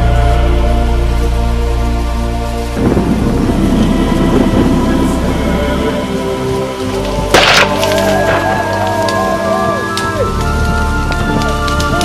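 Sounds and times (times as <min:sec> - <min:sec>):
background music wavering melody: 0:00.0 - 0:12.0
rifle shot: 0:07.4 - 0:08.1.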